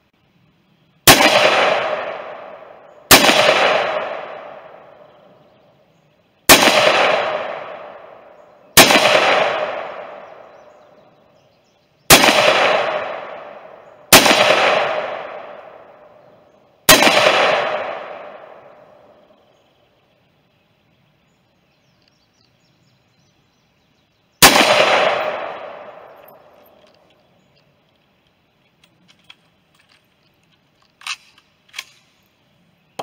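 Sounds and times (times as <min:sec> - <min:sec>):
rifle shots with echo: 0:01.0 - 0:05.2, 0:06.5 - 0:11.0, 0:12.1 - 0:19.4, 0:24.4 - 0:27.0.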